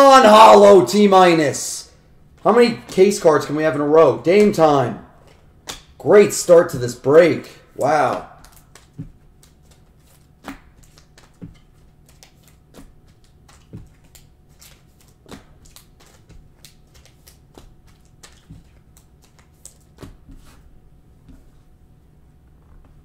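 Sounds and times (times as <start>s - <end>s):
cards flipped by hand: 7.8s - 20.6s.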